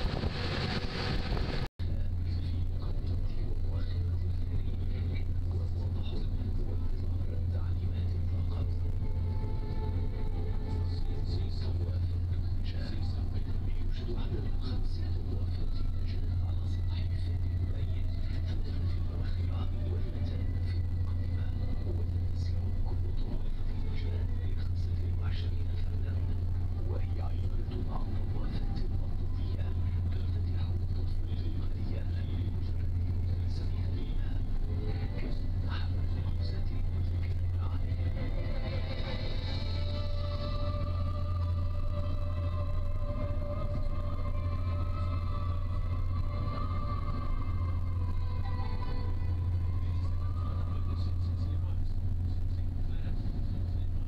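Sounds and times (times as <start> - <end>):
ferry engines droning: 0.0 - 54.0.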